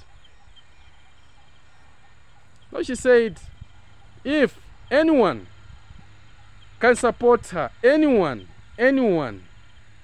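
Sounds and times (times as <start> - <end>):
faint high chirps: 0.0 - 5.1
low steady rumble: 0.0 - 10.0.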